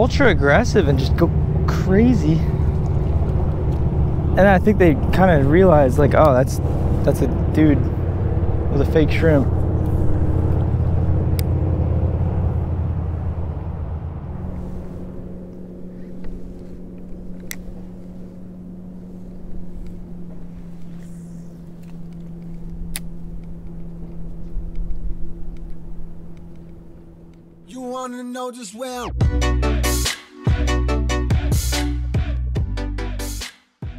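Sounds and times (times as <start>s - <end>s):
steady droning hum: 0.0s - 27.7s
motor engine rumble: 0.0s - 28.3s
sharp clicks: 21.7s - 27.5s.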